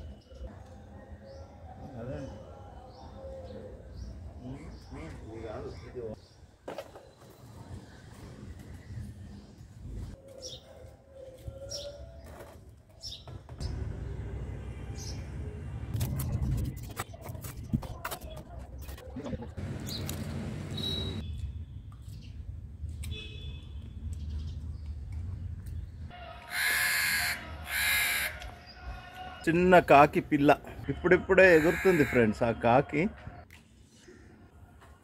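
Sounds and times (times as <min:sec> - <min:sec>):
crow cawing: 0:26.5 - 0:28.4, 0:31.5 - 0:32.2.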